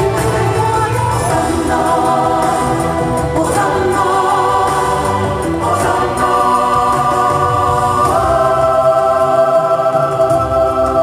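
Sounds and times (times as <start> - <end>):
chorus singing held chords: 0.0 - 11.0.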